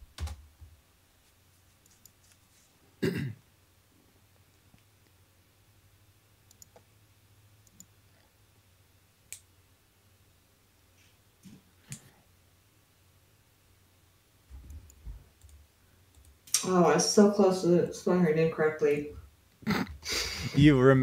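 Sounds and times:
low electrical hum: 0.0s - 21.0s
faint clicks and taps: 0.1s - 2.6s, 4.4s - 5.2s, 6.5s - 6.9s, 7.6s - 8.3s, 14.5s - 16.6s.

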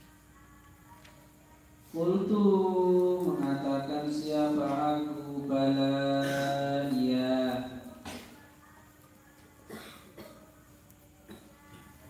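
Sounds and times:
man chanting into a microphone: 1.9s - 8.0s.

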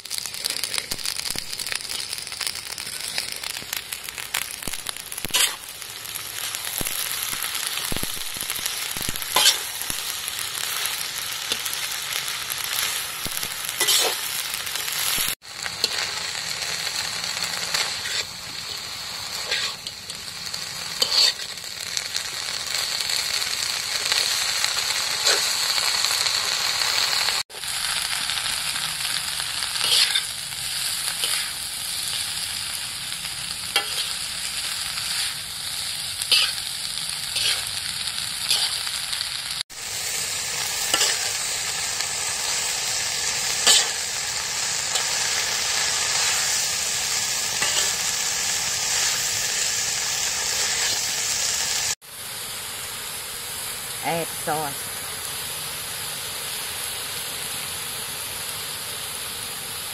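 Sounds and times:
crickets sizzling in a wok: 0.0s - 59.9s
metal spatula scraping a pan: 5.2s - 5.6s, 9.3s - 9.7s, 13.8s - 14.2s, 17.8s - 18.4s, 19.4s - 20.0s, 20.9s - 21.5s, 29.8s - 30.4s, 33.7s - 34.2s, 36.2s - 36.6s, 37.3s - 37.7s, 38.4s - 38.9s, 43.6s - 44.0s, 47.6s - 48.0s.

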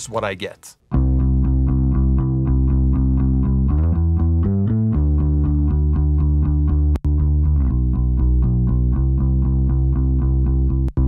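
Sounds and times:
repeated bass line notes: 0.9s - 11.0s.

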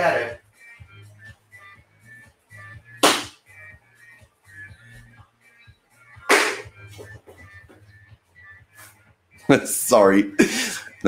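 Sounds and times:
sharp slaps: 3.0s - 3.4s, 6.3s - 6.7s.

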